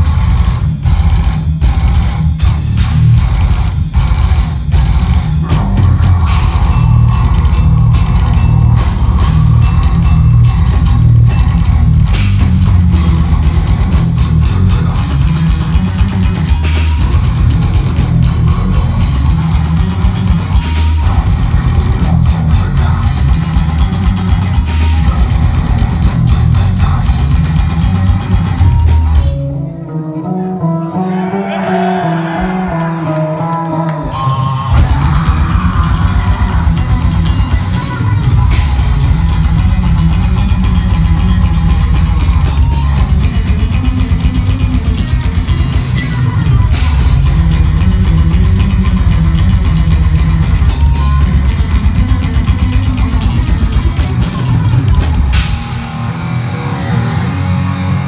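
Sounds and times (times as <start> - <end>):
fast dense drumming: 0.0 - 29.2, 34.8 - 56.0
bass guitar: 0.0 - 58.0
death metal band playing live: 0.0 - 58.0
distorted electric guitar: 0.0 - 58.0.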